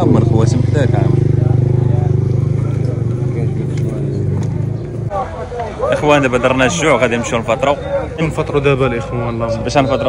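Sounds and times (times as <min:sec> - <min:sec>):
vehicle engine idling: 0:00.0 - 0:10.0.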